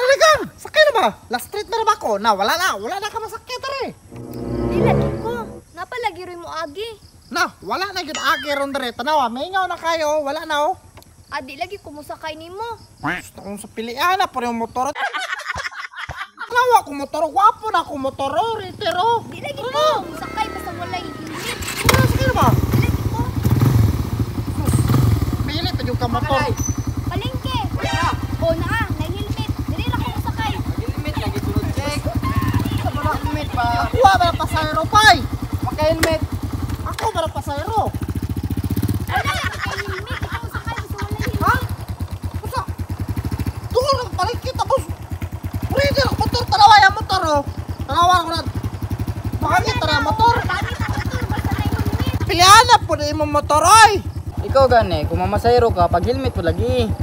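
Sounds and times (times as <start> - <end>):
scooter engine idling: 17.0 - 57.0
people's voices: 18.0 - 23.5, 24.5 - 36.2, 39.0 - 42.8, 49.4 - 54.6.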